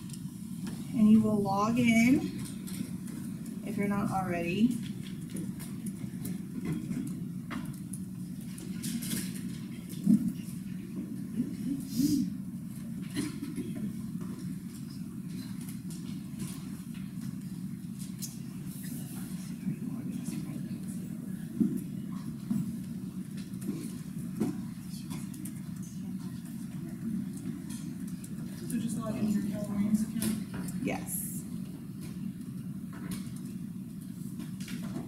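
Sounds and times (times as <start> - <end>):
low room hum: 0.0 - 35.0.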